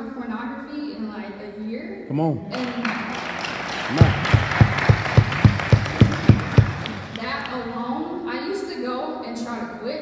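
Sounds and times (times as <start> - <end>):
audience applauding: 2.5 - 7.7
loud close clapping: 2.5 - 7.7.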